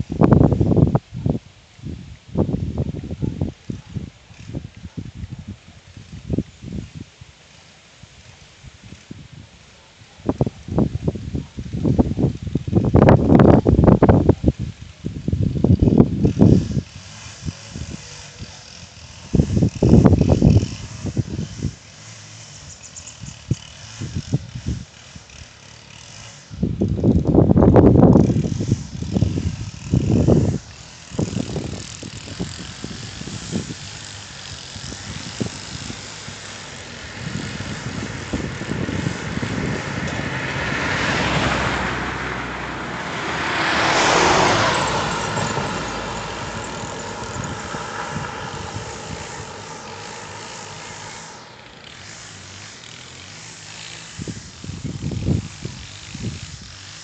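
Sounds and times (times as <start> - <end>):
car passing by: 32.5 - 54.4
loud low rumbling: 34.9 - 52.6.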